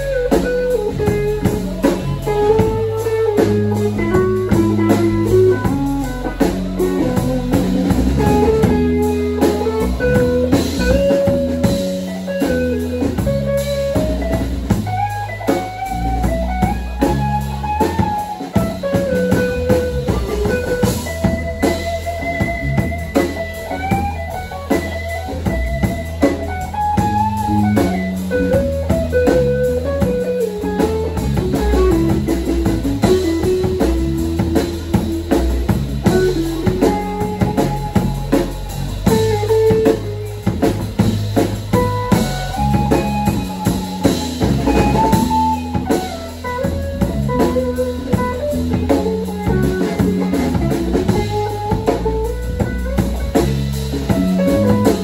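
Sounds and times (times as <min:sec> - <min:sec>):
drum kit steady beat: 0:00.0 - 0:55.0
electric bass guitar: 0:00.0 - 0:55.0
electric guitar lead melody: 0:00.0 - 0:55.0.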